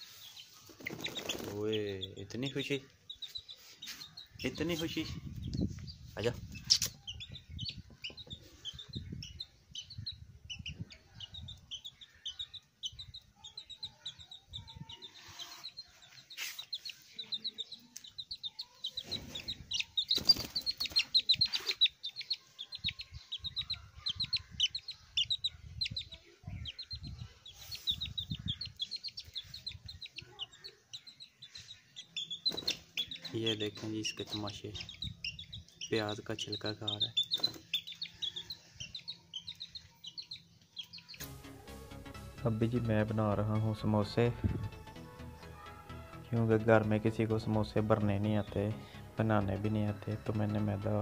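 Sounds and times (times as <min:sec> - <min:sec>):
chick peeping: 0:00.0 - 0:41.3
wing flapping: 0:00.6 - 0:01.6, 0:19.4 - 0:21.8.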